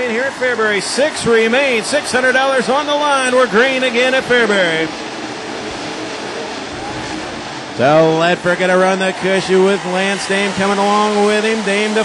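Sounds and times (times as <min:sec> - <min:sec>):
race car engines roaring: 0:00.0 - 0:12.0.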